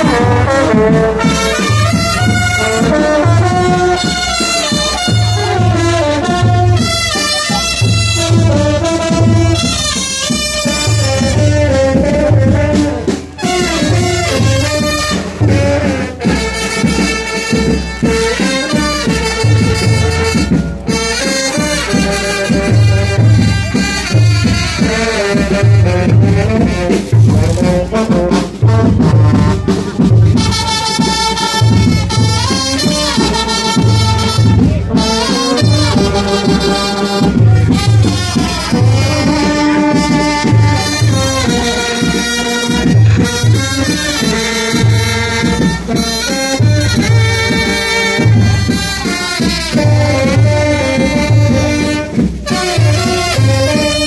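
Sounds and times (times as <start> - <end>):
horns playing melody: 0.0 - 54.0.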